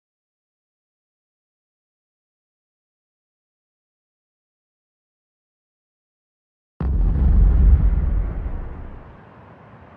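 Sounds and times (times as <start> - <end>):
deep rumbling boom: 6.8 - 9.2.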